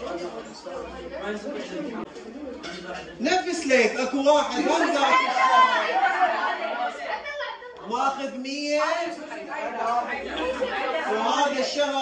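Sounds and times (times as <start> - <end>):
boys chattering: 0.0 - 12.0.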